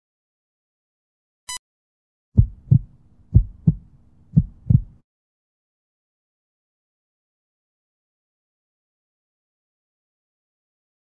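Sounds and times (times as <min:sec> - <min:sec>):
faint low hum: 0:02.4 - 0:05.0
heartbeat thumps: 0:02.4 - 0:05.0.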